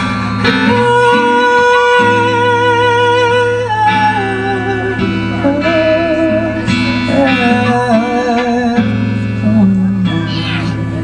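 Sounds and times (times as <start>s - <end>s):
person singing: 0.4s - 11.0s.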